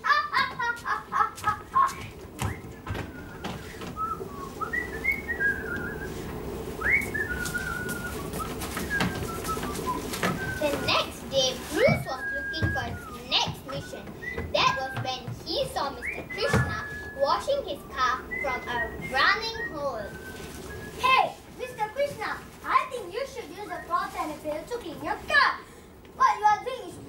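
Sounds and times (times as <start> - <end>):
children calling out: 0.0 - 2.9, 6.8 - 20.2
children talking: 0.0 - 27.0
room noise hum: 0.0 - 27.0.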